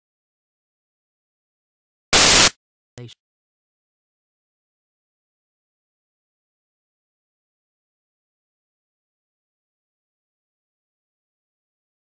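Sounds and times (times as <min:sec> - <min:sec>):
burst of static: 0:02.2 - 0:02.5.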